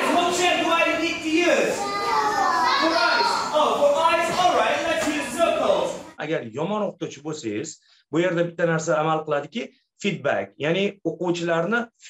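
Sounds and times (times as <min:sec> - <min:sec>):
man speaking: 0:00.0 - 0:01.8, 0:02.7 - 0:12.0
young children's voices: 0:01.3 - 0:06.2.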